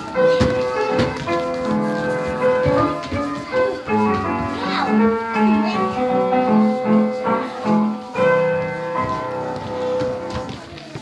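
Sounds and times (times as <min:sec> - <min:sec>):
piano chords ringing: 0:00.0 - 0:10.8.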